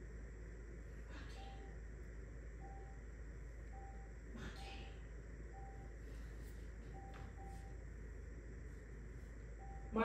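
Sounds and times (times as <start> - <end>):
low steady hum: 0.0 - 10.0
faint electronic beep: 2.6 - 3.1, 3.7 - 6.0, 9.6 - 10.0.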